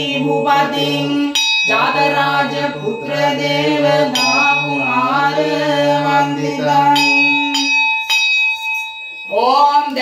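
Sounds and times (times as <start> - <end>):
person chanting: 0.0 - 7.8
hand bell ringing: 1.2 - 5.6, 6.9 - 10.0.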